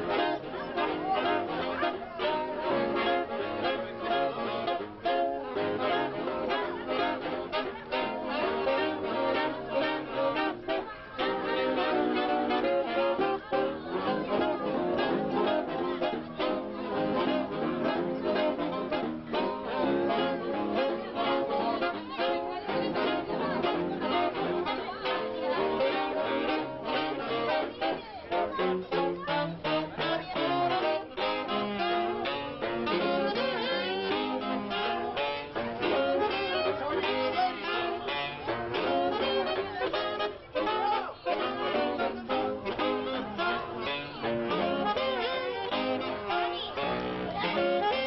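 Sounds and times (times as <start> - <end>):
saxophone ensemble playing: 0.0 - 48.0.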